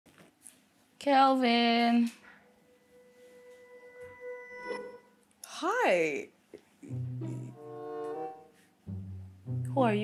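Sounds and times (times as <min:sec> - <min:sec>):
faint held musical note: 0:02.2 - 0:05.2.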